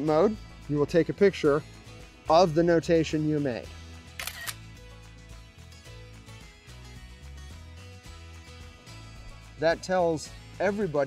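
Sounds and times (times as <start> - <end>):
background music: 0.0 - 11.0
camera shutter click: 4.2 - 4.6.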